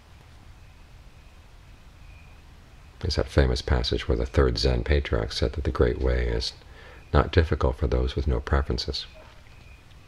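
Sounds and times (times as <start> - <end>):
faint hiss: 0.0 - 10.0
thin high tone: 0.0 - 10.0.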